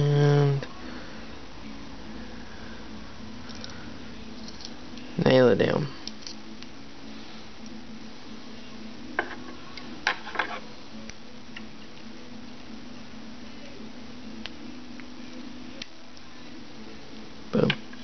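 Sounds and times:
low room hum: 0.0 - 18.0.

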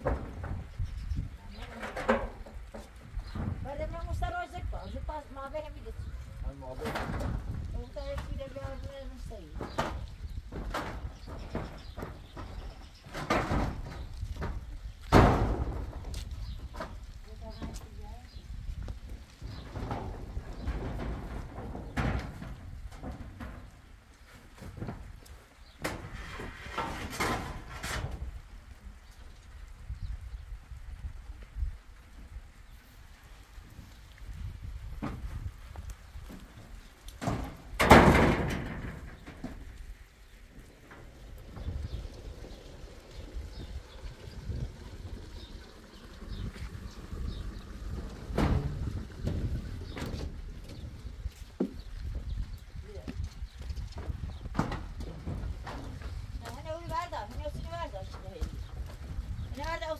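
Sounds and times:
knocks on metal roof: 9.6 - 16.1, 37.2 - 39.7, 54.0 - 56.2.

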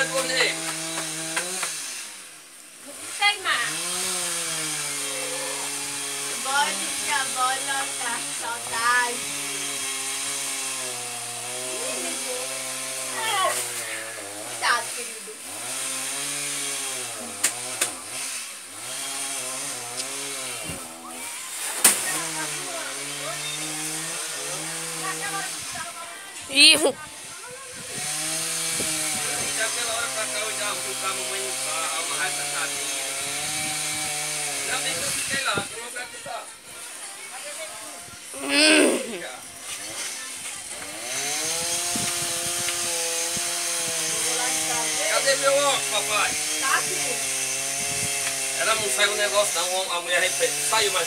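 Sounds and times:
chainsaw revving: 0.0 - 36.0, 38.3 - 51.0.

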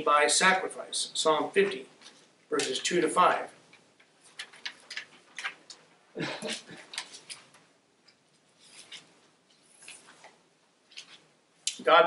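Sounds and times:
paper rustling and shuffling: 4.0 - 7.7, 8.3 - 11.3.

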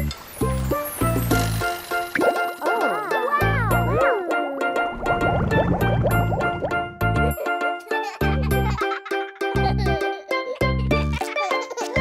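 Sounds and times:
children's background music: 0.0 - 12.0
cartoon bubbling bloops: 2.1 - 7.0.

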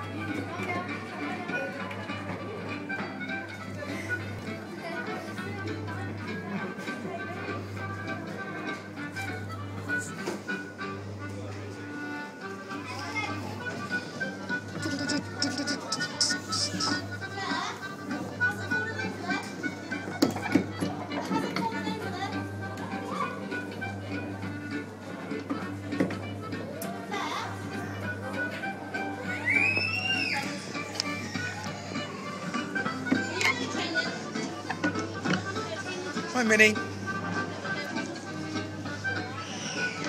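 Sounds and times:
kiddie ride music: 0.0 - 40.0
children's voices: 14.7 - 17.9.

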